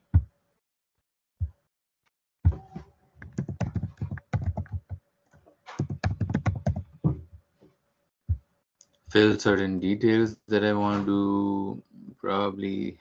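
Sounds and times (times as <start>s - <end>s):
typing on computer keyboard: 3.2s - 5.0s, 5.7s - 6.9s.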